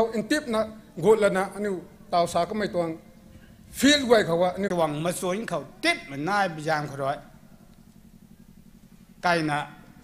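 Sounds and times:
man speaking: 0.0 - 3.0, 3.7 - 7.3, 9.2 - 9.8
faint low pulsing hum: 0.0 - 10.0.

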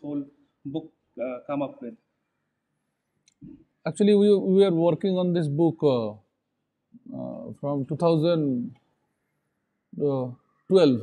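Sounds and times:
man speaking: 0.0 - 1.9, 3.9 - 6.2, 7.1 - 8.7, 10.0 - 11.0.

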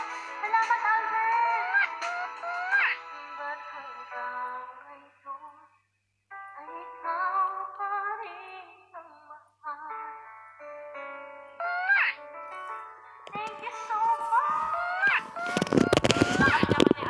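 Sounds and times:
woman singing into microphone: 13.3 - 17.0.

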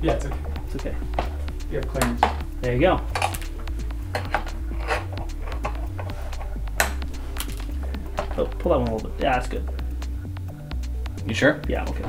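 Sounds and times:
background music with bass line: 0.0 - 12.0
zip ties snapping: 3.1 - 8.4.

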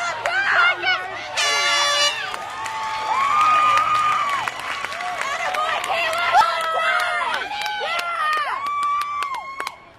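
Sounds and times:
crowd shouting and cheering: 0.0 - 9.9
short horn blast: 1.4 - 2.4.

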